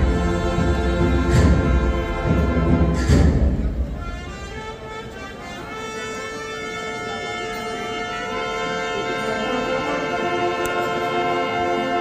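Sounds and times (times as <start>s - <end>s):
brass band holding a chord: 0.0s - 12.0s.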